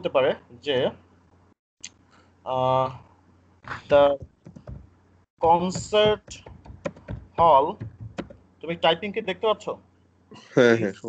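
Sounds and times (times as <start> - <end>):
person speaking: 3.7 - 4.8, 5.4 - 9.8
computer keyboard typing: 3.9 - 8.4.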